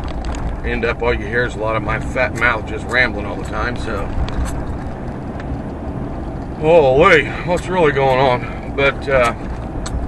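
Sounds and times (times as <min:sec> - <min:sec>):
vehicle road and engine rumble: 0:00.0 - 0:10.0.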